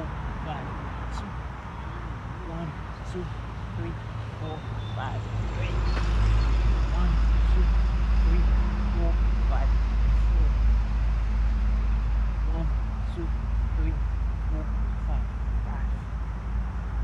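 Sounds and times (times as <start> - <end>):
faint voices: 0.0 - 10.6, 12.4 - 16.1
vehicle rumble: 0.0 - 17.0.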